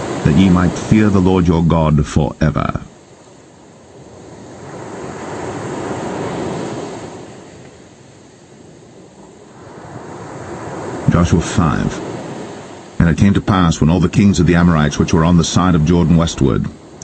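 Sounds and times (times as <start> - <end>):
ocean waves rushing in: 0.0 - 17.0.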